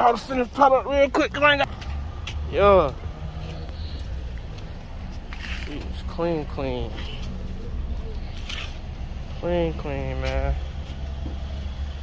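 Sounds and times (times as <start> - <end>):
vehicle rumble: 0.0 - 12.0.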